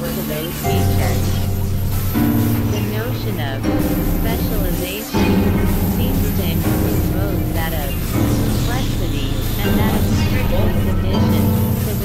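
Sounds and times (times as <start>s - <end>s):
low synthesizer drones: 0.0s - 12.0s.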